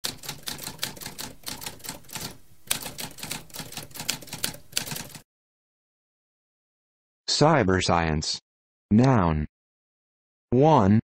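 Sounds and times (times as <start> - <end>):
typewriter keystrokes: 0.0 - 5.2.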